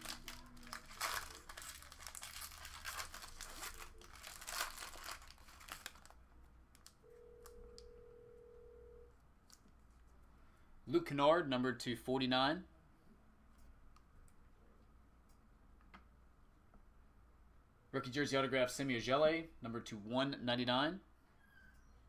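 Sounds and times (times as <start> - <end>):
foil wrapper crinkling and tearing: 0.0 - 6.2.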